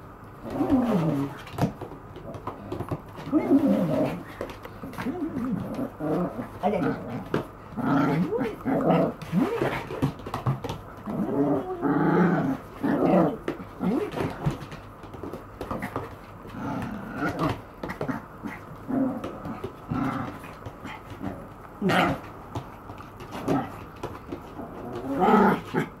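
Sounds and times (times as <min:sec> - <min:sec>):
dog play-growling: 0:00.4 - 0:26.0.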